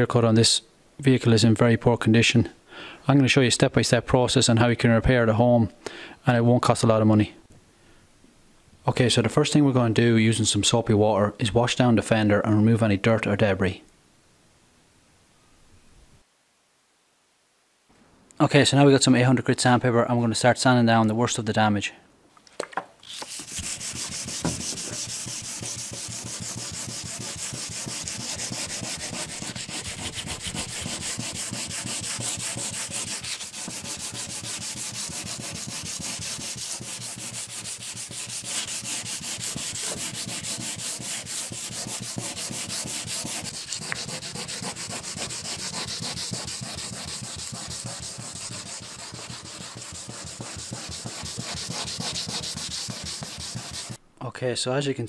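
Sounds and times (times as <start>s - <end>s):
sandpaper rasping on wet paint: 23.0s - 54.0s.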